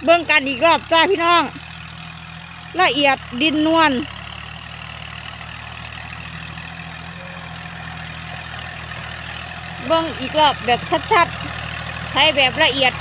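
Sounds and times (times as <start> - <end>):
tractor diesel engine under load: 0.0 - 13.0.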